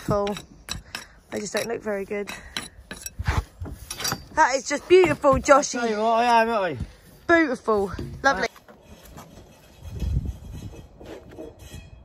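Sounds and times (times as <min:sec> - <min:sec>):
concrete block scraping: 0:07.9 - 0:12.0.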